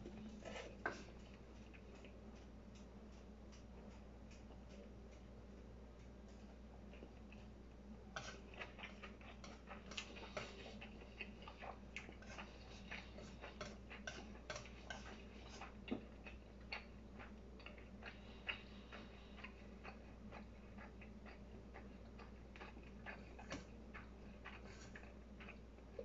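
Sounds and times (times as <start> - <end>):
chopsticks clicking on a dish: 1.2 - 5.3, 13.5 - 15.2
chewing smacks: 8.2 - 26.0.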